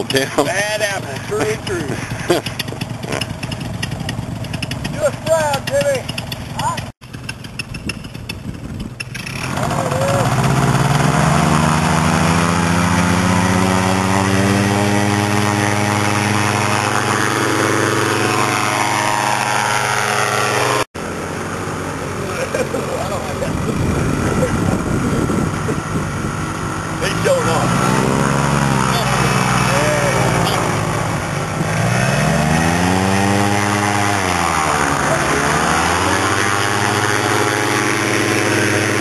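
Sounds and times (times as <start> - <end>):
paramotor engine and propeller: 0.0 - 39.0.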